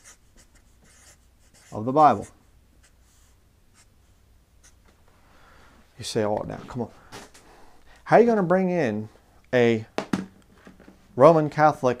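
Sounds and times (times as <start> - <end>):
marker writing on paper: 0.0 - 3.0
soft rub on paper: 0.0 - 4.8.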